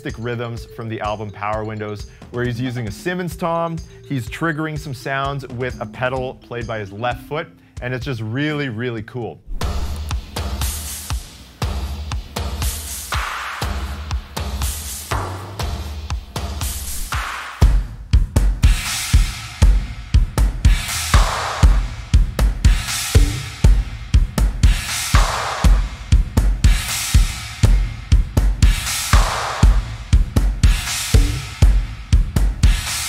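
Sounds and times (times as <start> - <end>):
drum kit playing a groove: 0.0 - 8.7, 9.6 - 33.0
snare drum strokes: 9.5 - 11.4, 16.6 - 17.8.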